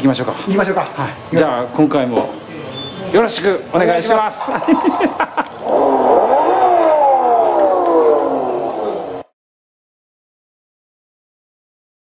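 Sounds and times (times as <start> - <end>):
electric motor whine: 5.6 - 9.2.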